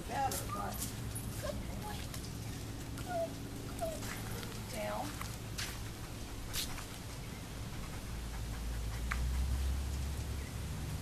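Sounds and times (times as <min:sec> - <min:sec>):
dog whining: 0:03.0 - 0:04.5.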